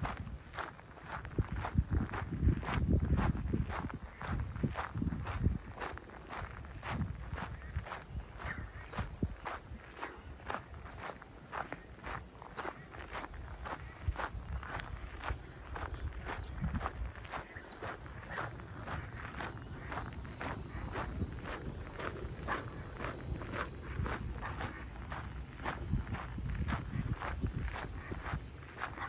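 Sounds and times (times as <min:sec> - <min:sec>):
footsteps on gravel: 0:00.0 - 0:29.0.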